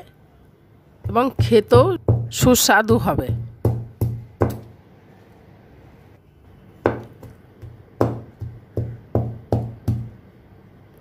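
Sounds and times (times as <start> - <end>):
steel utensil knocking on wooden board: 6.9 - 10.1.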